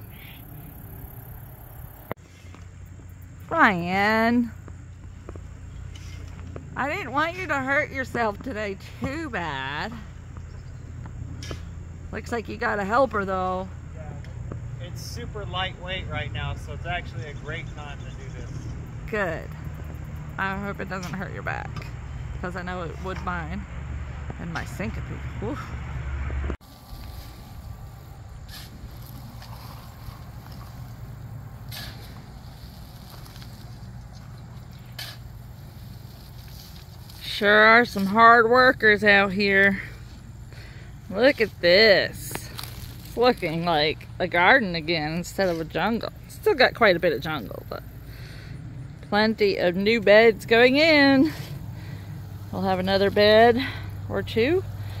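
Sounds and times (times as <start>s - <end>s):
garden tool scraping mulch: 5.9s - 7.0s, 26.6s - 38.4s, 41.1s - 44.4s
steady low rumble: 13.6s - 55.0s.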